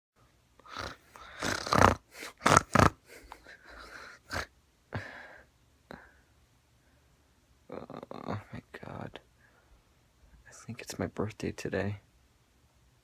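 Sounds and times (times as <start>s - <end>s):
person snoring: 0.6s - 5.2s, 7.7s - 8.5s.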